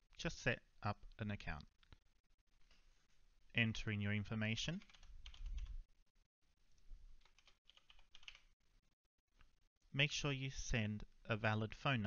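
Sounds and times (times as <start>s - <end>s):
faint computer keyboard typing: 4.7s - 5.8s, 7.2s - 8.5s.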